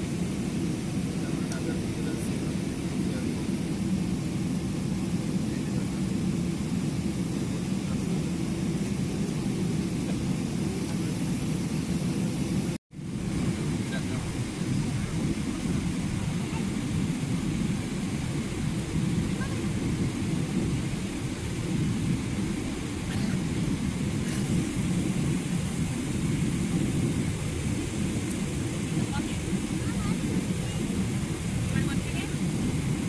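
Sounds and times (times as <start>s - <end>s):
jet engines at climb power: 0.0s - 33.0s.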